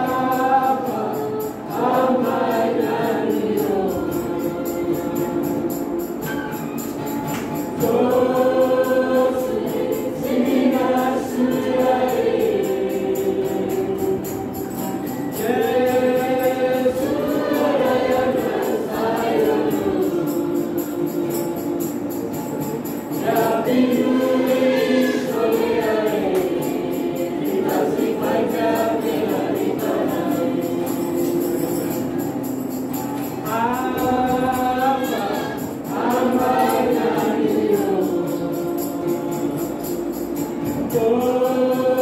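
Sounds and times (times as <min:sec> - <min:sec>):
youth choir singing: 0:00.0 - 0:06.6, 0:07.5 - 0:42.0
tambourine beat: 0:00.0 - 0:42.0.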